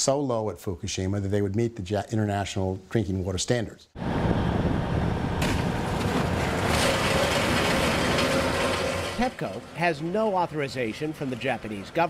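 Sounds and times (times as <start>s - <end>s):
crane machinery noise: 4.0s - 12.0s.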